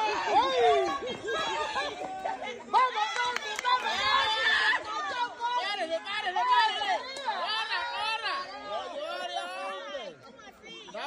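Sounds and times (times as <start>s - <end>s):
excited voices shouting: 0.0s - 11.0s.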